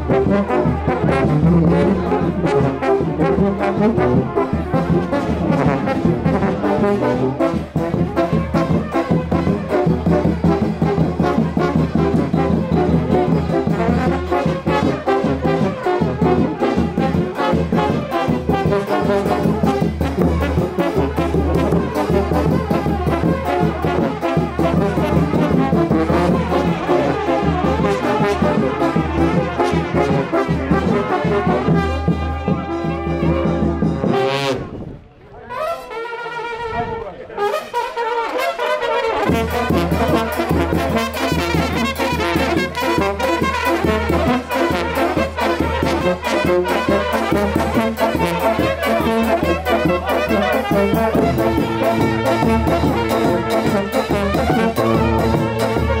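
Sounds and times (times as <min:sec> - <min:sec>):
brass band playing dance tune: 0:00.0 - 0:56.0.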